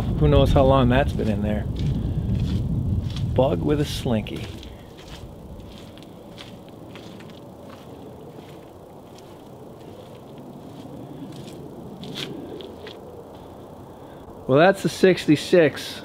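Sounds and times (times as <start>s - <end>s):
low background noise: 0.0s - 16.0s
faint footsteps: 1.0s - 13.6s.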